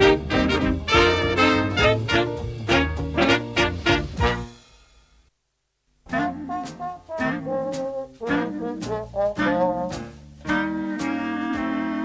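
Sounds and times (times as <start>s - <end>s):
brass-led jazz band: 0.0s - 4.7s, 6.1s - 12.0s
drum strikes: 0.0s - 5.3s.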